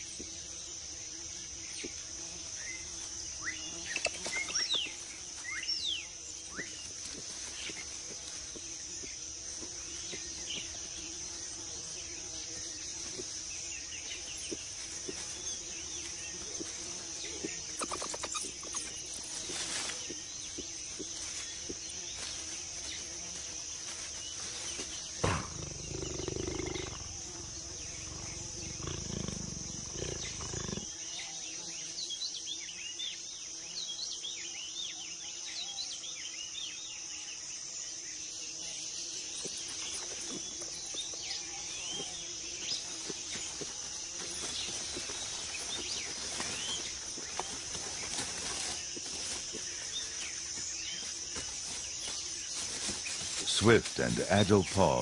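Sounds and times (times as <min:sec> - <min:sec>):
high-pitched insect chorus: 0:00.0 - 0:55.0
low growl: 0:25.2 - 0:30.9.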